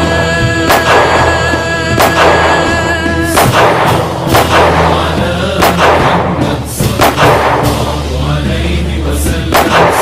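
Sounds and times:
fireworks banging: 0.0s - 8.3s
music: 0.0s - 10.0s.

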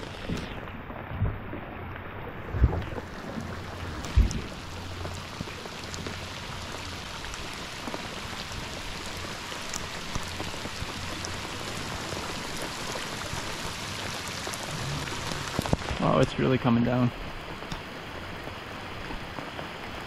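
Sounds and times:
heavy rain on lake water: 0.0s - 20.0s
raindrops tapping: 0.0s - 20.0s.

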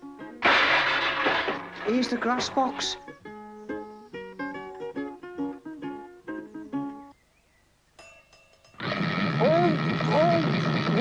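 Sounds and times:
plucked guitar music: 0.0s - 0.7s, 1.4s - 7.1s
crash and clatter of objects: 0.4s - 3.0s.

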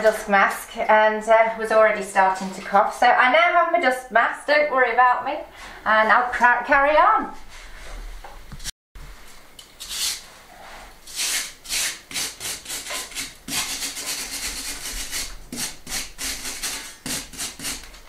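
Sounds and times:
wire brush scrubbing stone: 11.1s - 17.9s.

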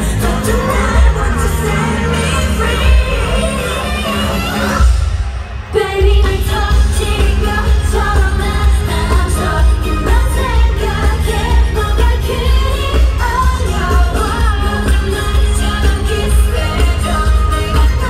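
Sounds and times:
pop song over stadium speakers: 0.0s - 18.0s.

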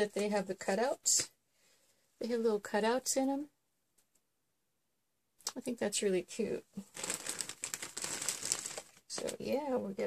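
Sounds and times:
plastic bag crinkling: 6.8s - 9.6s.

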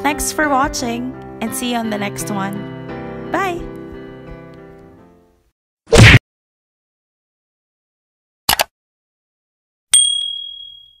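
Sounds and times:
bell ding: 9.9s - 11.0s.

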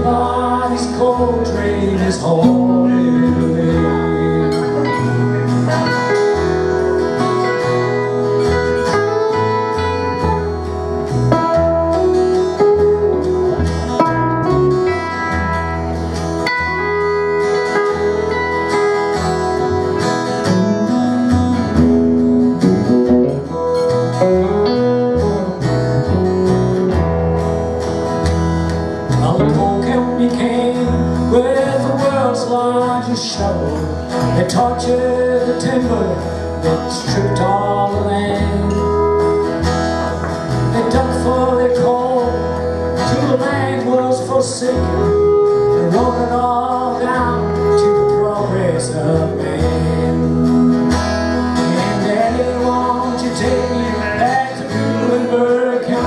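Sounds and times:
band playing country-folk song: 0.0s - 56.0s.

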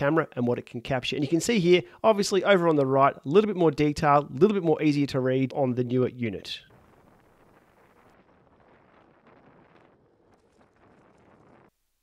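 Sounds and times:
faint steady hiss: 0.0s - 12.0s.

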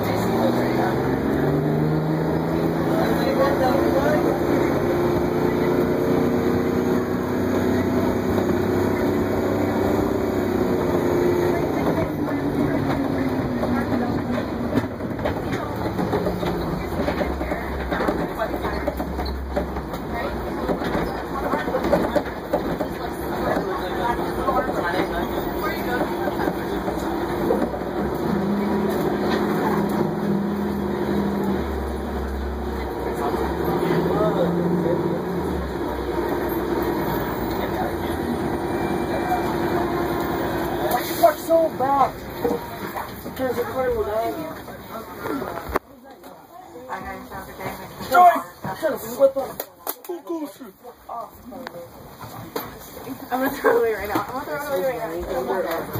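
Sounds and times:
bus engine running: 0.0s - 55.9s.

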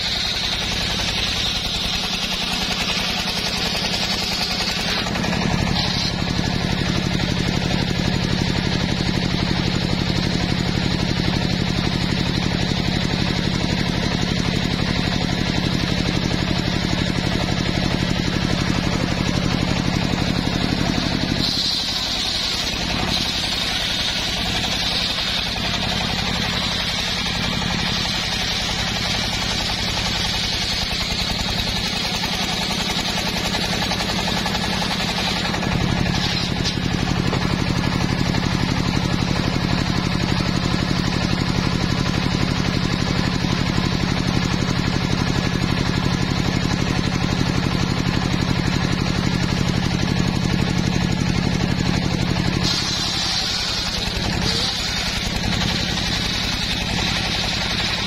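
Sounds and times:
engine drone: 0.0s - 58.0s
saw blade whining through wood: 0.0s - 58.0s.

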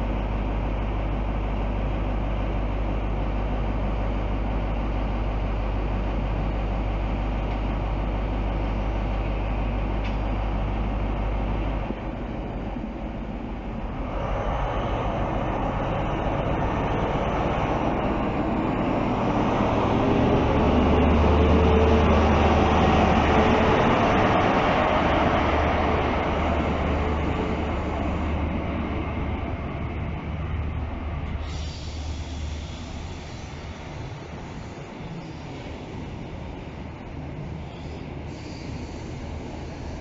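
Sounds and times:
diesel train engine passing: 0.0s - 40.0s
train coaches rolling by: 0.0s - 40.0s.

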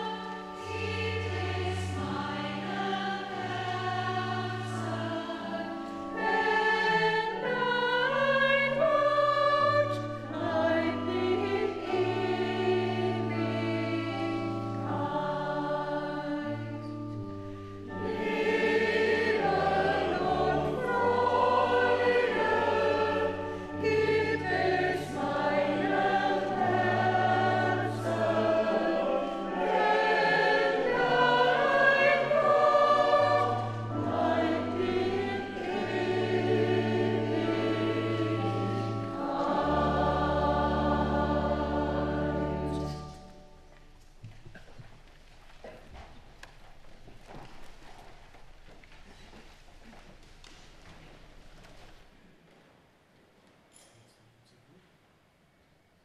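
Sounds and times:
choir singing in parts: 0.0s - 43.3s.

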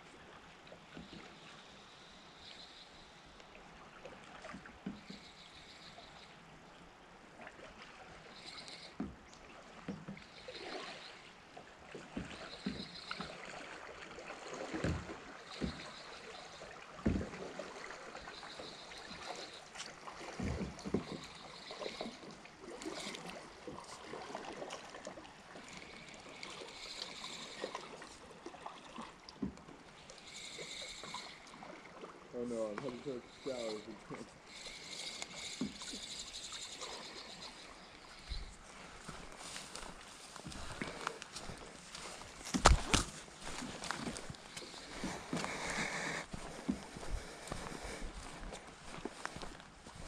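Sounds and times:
moving water: 0.0s - 50.0s.

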